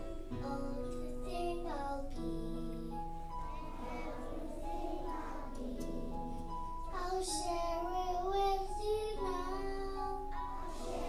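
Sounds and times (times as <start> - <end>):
children singing together: 0.0 - 11.0.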